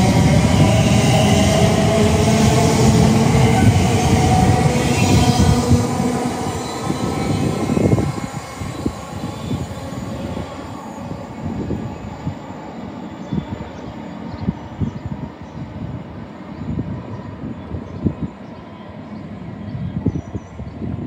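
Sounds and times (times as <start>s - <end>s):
train electric hum: 0.0s - 21.0s
train wheels rumbling on rails: 0.0s - 21.0s.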